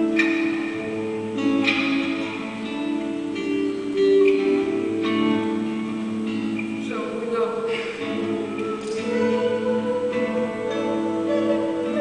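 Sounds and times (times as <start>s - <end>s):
acoustic guitar: 0.0s - 12.0s
woman singing: 6.8s - 12.0s.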